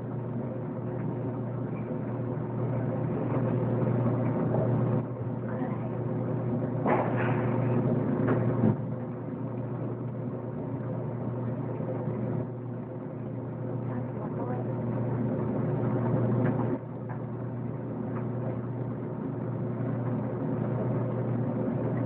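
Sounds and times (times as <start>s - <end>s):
low machine hum: 0.0s - 22.0s.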